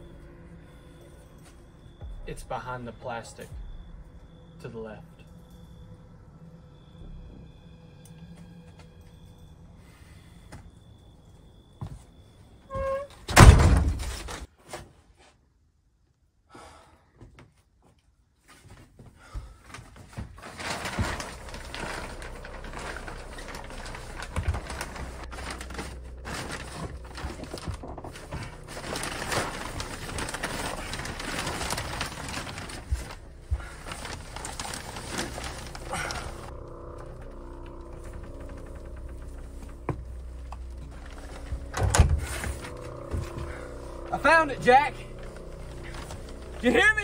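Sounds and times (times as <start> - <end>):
low steady drone: 0.0 - 11.8, 20.6 - 47.0
plastic sheeting crinkling: 19.9 - 36.5, 37.1 - 47.0.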